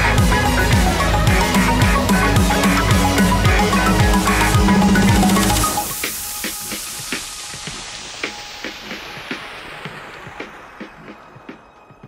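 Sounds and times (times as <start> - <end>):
hissing music tail: 0.0 - 11.4.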